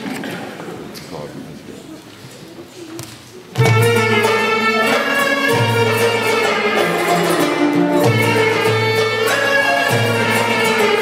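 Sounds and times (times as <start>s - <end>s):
faint murmur of voices: 0.0s - 3.9s.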